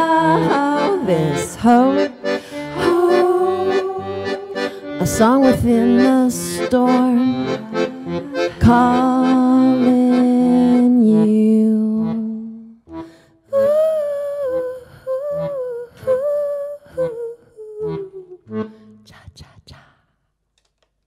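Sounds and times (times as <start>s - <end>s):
woman singing: 0.0s - 12.8s, 13.5s - 19.8s
piano accordion: 0.0s - 19.1s.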